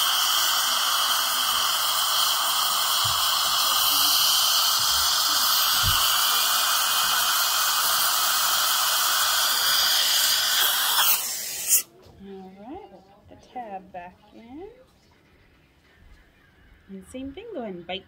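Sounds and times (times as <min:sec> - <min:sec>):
dental suction hissing: 0:00.0 - 0:11.9.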